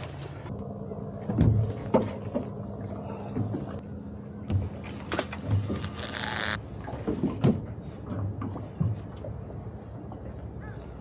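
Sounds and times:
fishing reel whirring ratchet: 5.8s - 6.6s.

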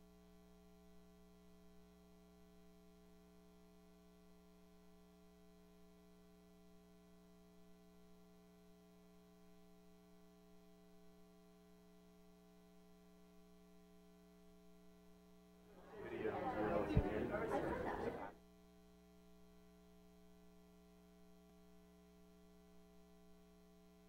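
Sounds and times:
faint electrical mains hum: 0.0s - 24.0s.

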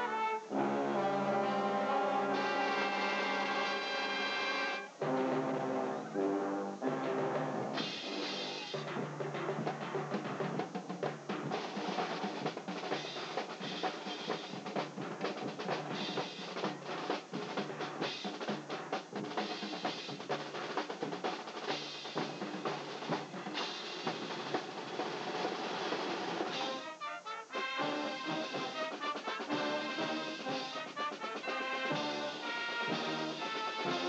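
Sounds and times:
marching band playing: 0.0s - 34.0s
rapid drum strokes: 7.2s - 34.0s.

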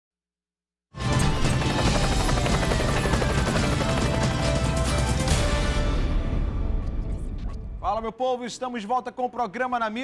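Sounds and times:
helicopter rotor sound effect: 1.0s - 5.4s
news theme music: 1.0s - 8.2s.

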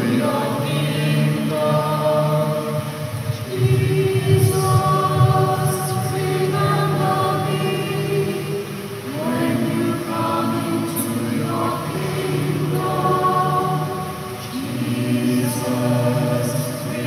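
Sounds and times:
choir singing slow chords: 0.0s - 17.0s.

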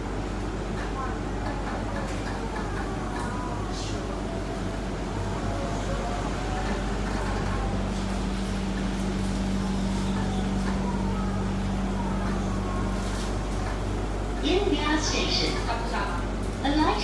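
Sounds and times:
monorail cabin rumble and hum: 0.0s - 17.0s.

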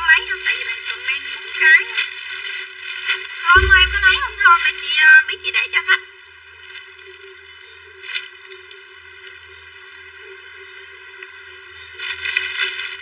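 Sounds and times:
plastic bags crinkling: 0.0s - 5.0s, 12.0s - 13.0s
background music: 3.6s - 4.6s.

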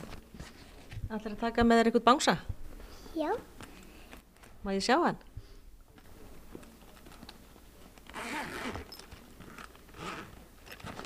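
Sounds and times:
zipper rasping open: 8.1s - 11.0s.

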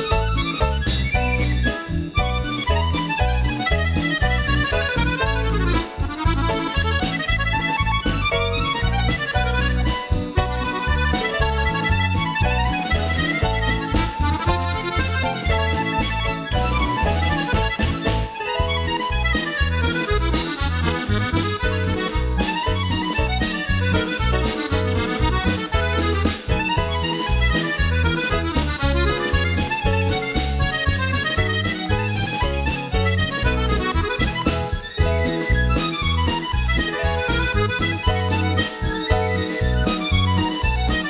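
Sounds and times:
accordion playing polka: 0.0s - 41.0s.

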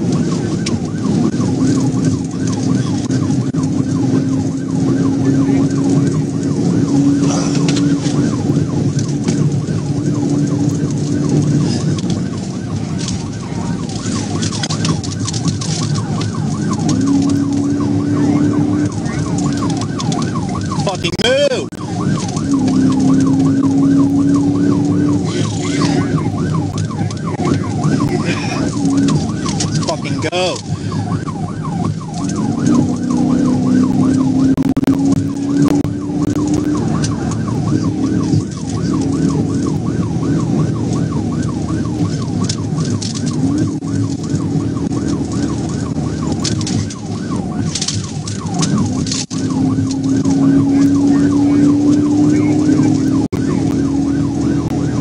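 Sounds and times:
car engine and road noise: 0.0s - 55.0s
police siren yelping: 0.0s - 55.0s.

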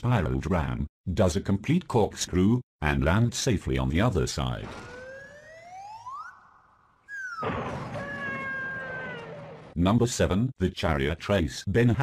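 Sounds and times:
slide whistle gliding: 6.1s - 7.6s.

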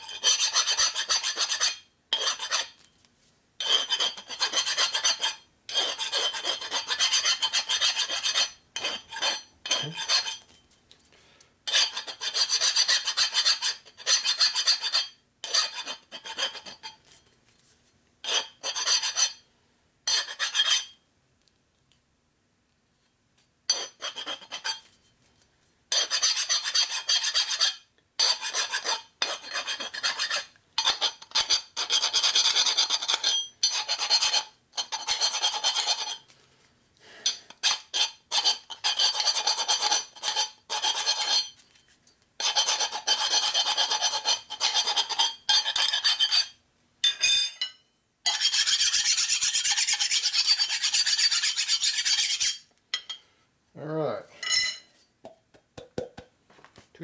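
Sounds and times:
hand file scraping steel: 0.0s - 2.9s, 3.6s - 10.5s, 11.6s - 17.0s, 18.2s - 19.4s, 20.1s - 21.0s, 23.7s - 25.0s, 25.9s - 36.3s, 37.1s - 41.6s, 42.4s - 46.6s, 48.3s - 53.2s.

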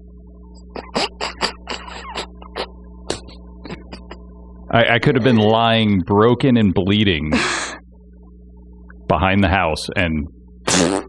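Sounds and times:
faint electrical hum: 0.0s - 11.0s
stifled laughter: 4.8s - 5.8s, 7.3s - 7.8s.

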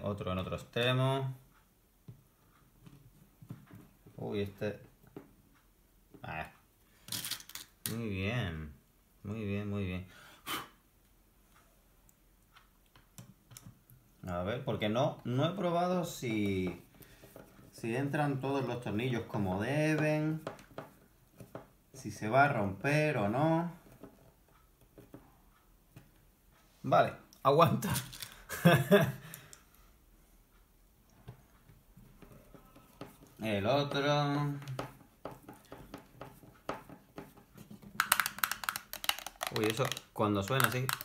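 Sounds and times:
man speaking: 0.0s - 1.4s, 4.2s - 4.9s, 6.2s - 6.6s, 7.9s - 10.1s, 14.2s - 16.9s, 17.7s - 20.5s, 22.0s - 23.8s, 26.8s - 29.2s, 33.4s - 34.9s, 39.4s - 41.0s.

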